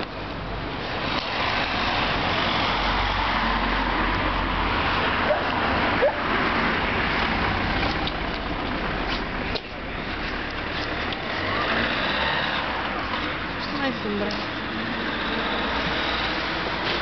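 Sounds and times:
passing vehicles: 0.0 - 17.0.

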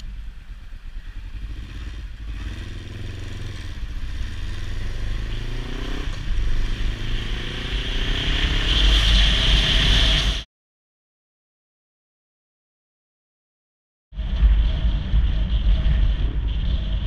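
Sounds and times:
motorcycle engine accelerating: 0.0 - 10.5.

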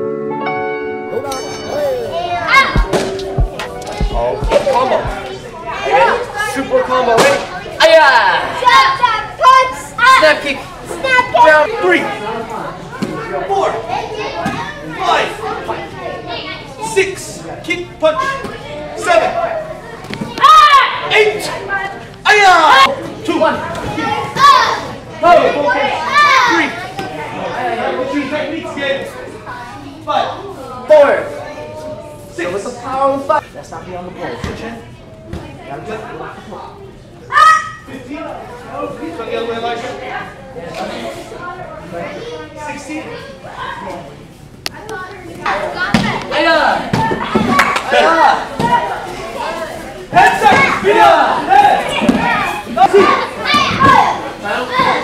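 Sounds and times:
children shouting: 1.1 - 6.3, 19.6 - 21.1, 24.0 - 26.7, 37.3 - 37.9, 50.2 - 55.0
children's voices and shouts: 1.1 - 17.1, 18.1 - 23.0, 23.6 - 32.6, 37.2 - 38.0, 44.7 - 55.0
thuds of kicks and strikes: 2.8 - 5.2.

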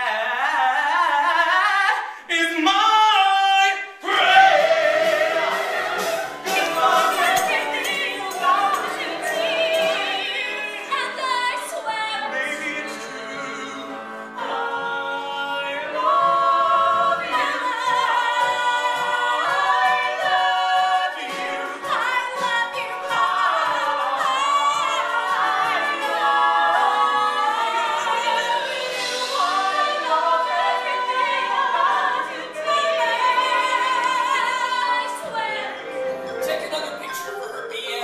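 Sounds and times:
choir singing with music: 0.0 - 38.0.

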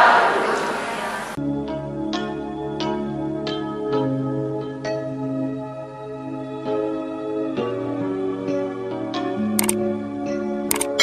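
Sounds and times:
soft background music: 1.4 - 11.0
sharp mouse click effects: 10.7 - 11.0.

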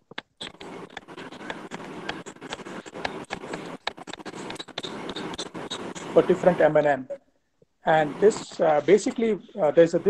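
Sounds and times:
stylus tapping and scratching on glass: 0.0 - 6.2.

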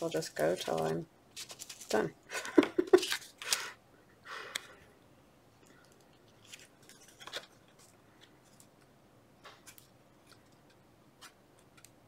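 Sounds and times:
cards and tools rustling and clicking: 0.0 - 3.7, 5.7 - 12.0.

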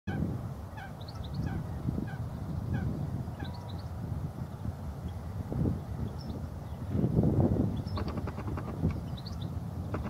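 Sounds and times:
birds calling: 7.7 - 10.0.

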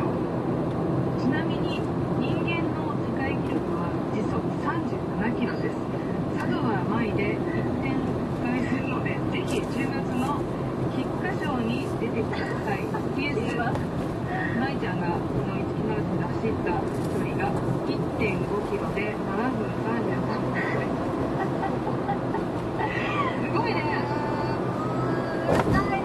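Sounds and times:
car driving drone from inside: 0.0 - 26.0.

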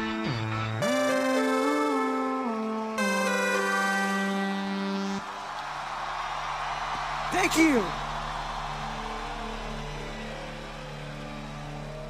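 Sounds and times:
crowd cheering: 2.5 - 12.0.

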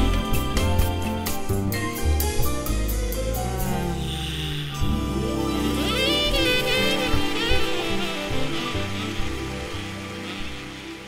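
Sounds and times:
orchestra playing chords: 2.8 - 11.0.

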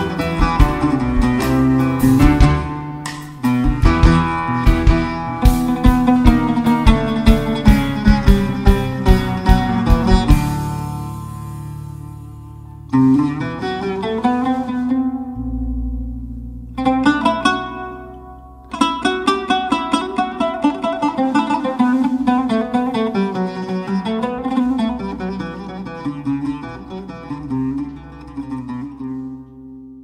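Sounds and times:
oud plucked notes: 0.0 - 30.0
deep low note: 15.4 - 19.1.

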